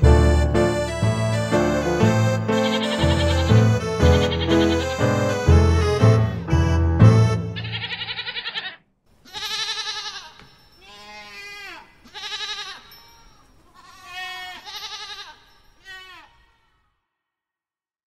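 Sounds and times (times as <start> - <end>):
song ending on loud chords: 0.0 - 7.6
sheep bleating: 2.5 - 5.1, 7.6 - 12.9, 13.8 - 16.9.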